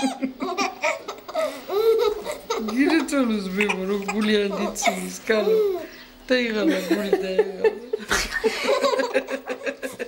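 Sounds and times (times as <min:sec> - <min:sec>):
person laughing: 0:00.0 - 0:05.8, 0:06.7 - 0:10.0.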